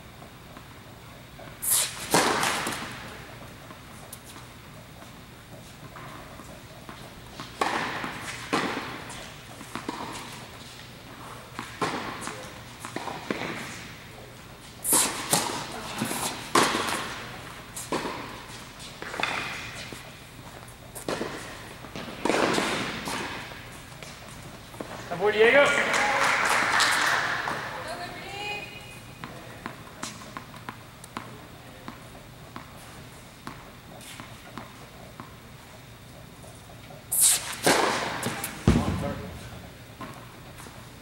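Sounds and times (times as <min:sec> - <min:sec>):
rackets hitting tennis ball: 0:01.4 - 0:41.0
tennis ball bouncing on court: 0:05.8 - 0:10.6, 0:11.5 - 0:13.8, 0:14.9 - 0:25.0, 0:29.2 - 0:35.4, 0:37.6 - 0:40.7.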